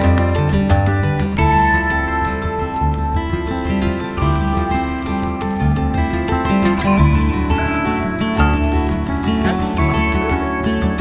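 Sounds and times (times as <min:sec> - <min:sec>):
guitar background music: 0:00.0 - 0:11.0
steady low beat: 0:00.0 - 0:11.0.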